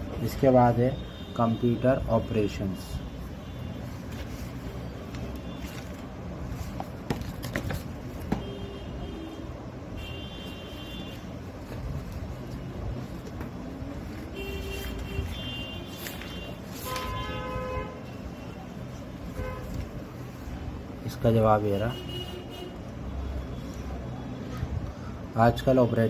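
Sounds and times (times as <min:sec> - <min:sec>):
road traffic rumble: 0:00.0 - 0:26.0
vehicle horns tooting: 0:08.3 - 0:11.4, 0:14.3 - 0:18.7, 0:19.3 - 0:19.8, 0:21.7 - 0:23.6.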